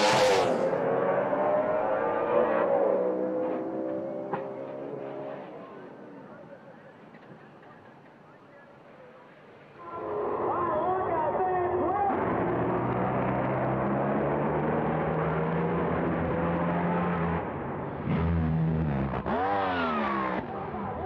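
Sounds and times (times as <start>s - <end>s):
drag racing engines at full throttle: 0.0s - 6.6s, 10.0s - 21.0s.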